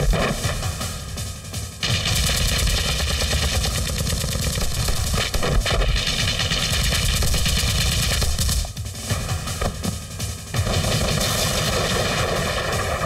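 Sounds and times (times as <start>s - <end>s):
film score music: 0.0s - 13.0s
rapid machine-gun fire: 1.8s - 9.9s, 10.5s - 13.0s.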